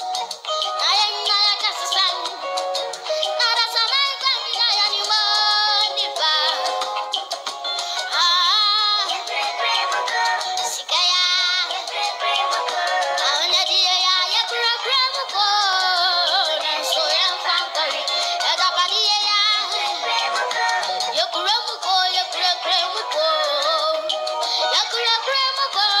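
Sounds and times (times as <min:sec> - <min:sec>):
boy singing into microphone: 0:00.7 - 0:02.4, 0:03.2 - 0:06.8, 0:08.1 - 0:26.0.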